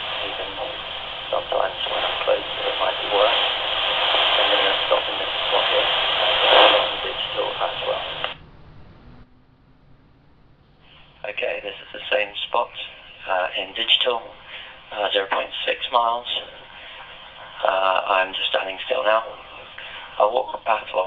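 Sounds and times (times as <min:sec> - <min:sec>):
radio hiss: 0:00.0 - 0:08.4, 0:10.8 - 0:21.0
walkie-talkie voice transmission: 0:00.0 - 0:08.4, 0:11.2 - 0:21.0.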